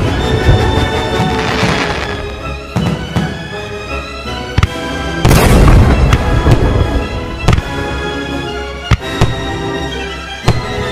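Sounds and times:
background music: 0.0s - 10.9s
firework crackling: 0.5s - 3.0s.

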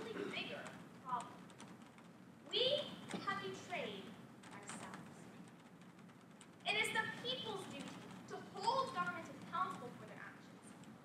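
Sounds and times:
young woman giving a speech: 6.7s - 10.5s.

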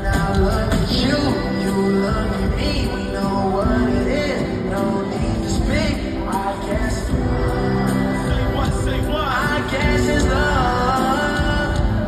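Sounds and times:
live band music: 0.0s - 12.0s
person singing: 0.0s - 12.0s.

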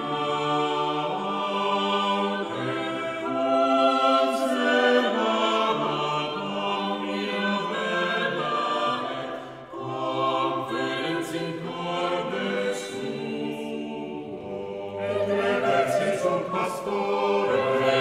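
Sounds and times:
a cappella choir singing: 0.0s - 18.0s.

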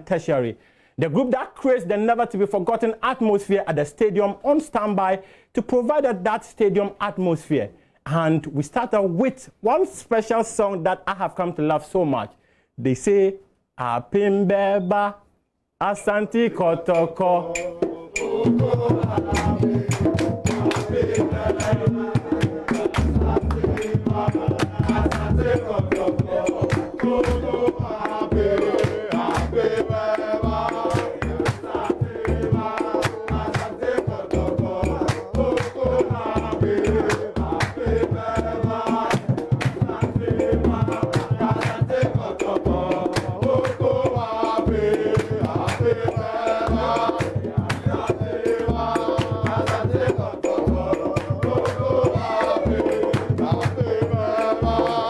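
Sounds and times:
crowd singing a chant: 16.5s - 55.0s
drums beating: 17.0s - 55.0s.

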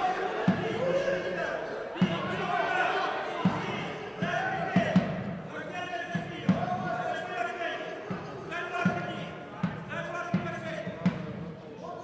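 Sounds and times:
voices shouting in a hall: 0.0s - 12.0s.

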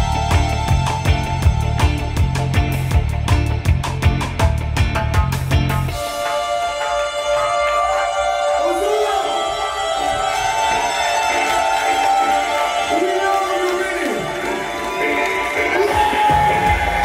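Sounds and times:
deep bass beat: 0.0s - 6.1s
sustained guitar and synth tones: 0.0s - 12.6s.

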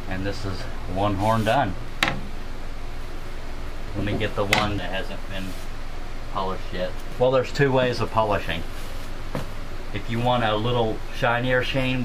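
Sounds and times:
room hum and hiss: 0.0s - 12.0s.

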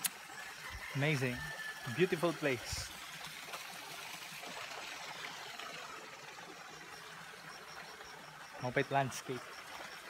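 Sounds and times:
water running into pool: 0.0s - 10.0s.

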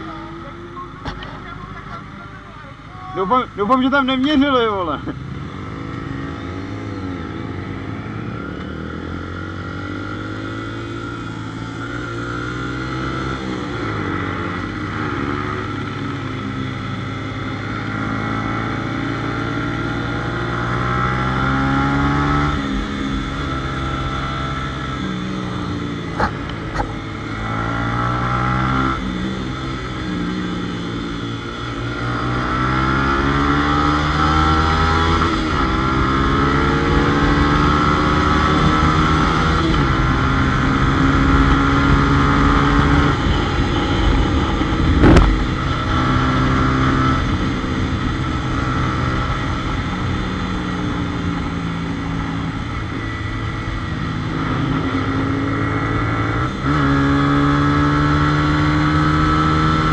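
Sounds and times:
motorcycle engine accelerating: 0.0s - 59.9s.

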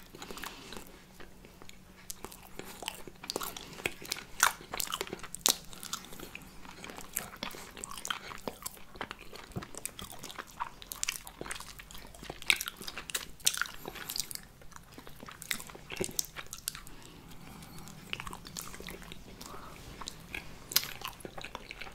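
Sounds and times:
biting and chewing cookie: 0.0s - 21.9s.

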